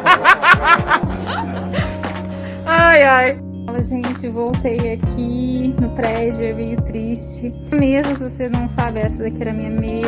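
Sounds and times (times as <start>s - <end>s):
man laughing: 0.0s - 2.1s
background music with bass drum: 0.0s - 10.0s.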